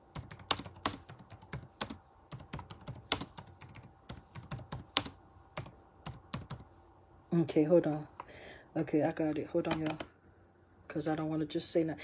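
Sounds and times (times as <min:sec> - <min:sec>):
fingers typing on keyboard: 0:00.1 - 0:06.7, 0:09.7 - 0:10.1.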